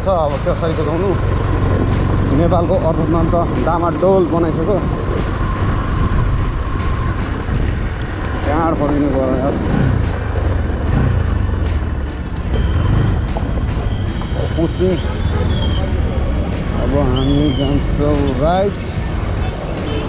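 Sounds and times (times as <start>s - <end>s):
motorcycle engine running: 0.0s - 18.5s
wind noise on microphone: 4.7s - 11.6s.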